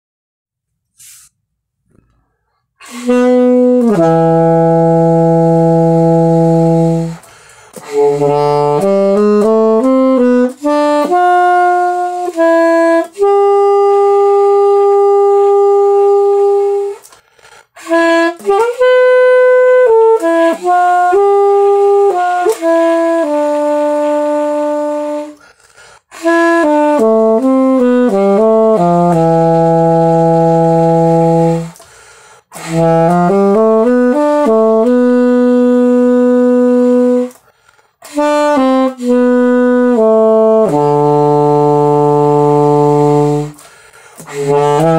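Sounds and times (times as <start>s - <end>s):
breath: 1.0s - 2.8s, 7.2s - 7.8s, 17.1s - 17.8s, 25.4s - 26.1s, 31.8s - 32.5s, 37.4s - 38.0s, 43.6s - 44.2s
saxophone notes: 2.8s - 44.9s.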